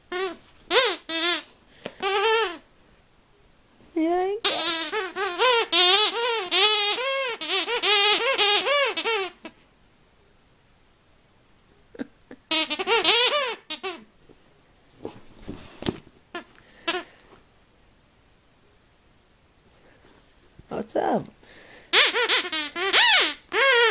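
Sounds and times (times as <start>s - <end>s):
dog toy squeaker squeaking: 0.1s - 2.6s, 4.4s - 9.6s, 12.5s - 14.1s, 21.9s - 23.9s.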